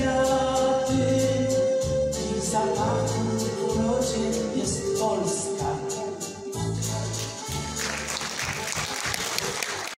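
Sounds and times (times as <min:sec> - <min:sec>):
audience applauding: 0:07.5 - 0:10.0.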